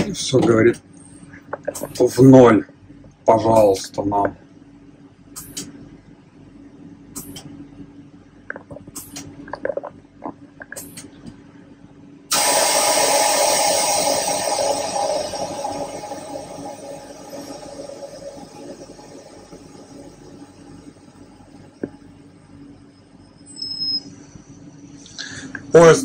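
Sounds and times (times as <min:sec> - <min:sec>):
valve click: 0:12.3 - 0:15.0
compressed air hissing: 0:12.3 - 0:17.9.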